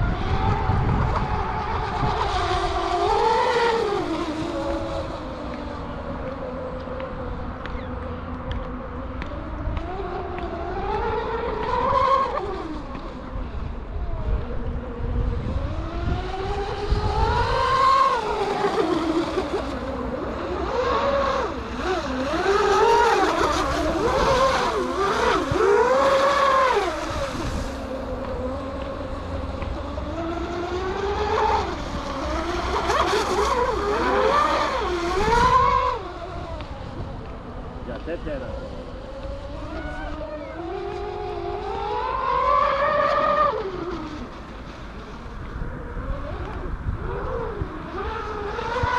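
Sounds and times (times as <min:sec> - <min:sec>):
low wind rumble: 0:00.0 - 0:48.9
model boat motor revving: 0:00.0 - 0:48.9.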